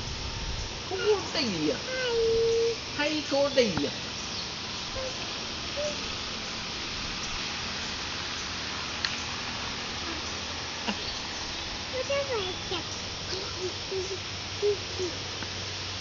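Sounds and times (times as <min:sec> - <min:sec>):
outdoor background hiss: 0:00.0 - 0:16.0.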